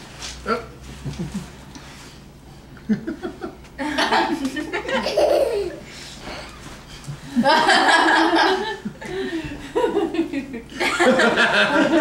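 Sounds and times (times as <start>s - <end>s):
person laughing: 1.0s - 1.6s, 2.9s - 5.8s.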